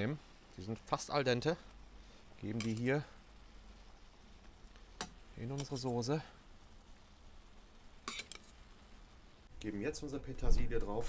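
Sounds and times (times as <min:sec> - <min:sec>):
simmering pans hissing: 0:00.0 - 0:11.0.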